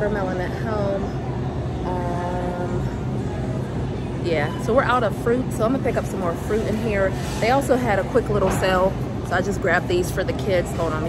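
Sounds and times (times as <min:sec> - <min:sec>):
supermarket background hum: 0:00.0 - 0:11.0.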